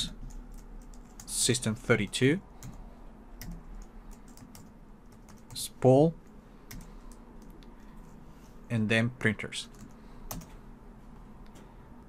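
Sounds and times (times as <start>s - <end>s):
computer keyboard typing: 0.0s - 2.8s, 3.4s - 5.6s, 6.7s - 7.6s, 9.7s - 10.6s.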